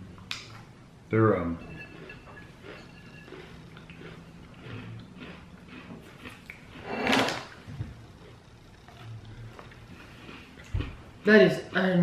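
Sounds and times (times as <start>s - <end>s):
rough scraping: 1.2s - 7.7s
chewing crisp cookies: 1.7s - 12.0s.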